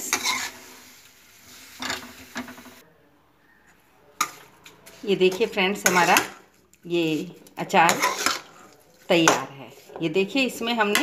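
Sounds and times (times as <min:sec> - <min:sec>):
metal spoon scraping a pot: 0:00.0 - 0:00.8, 0:04.2 - 0:11.0.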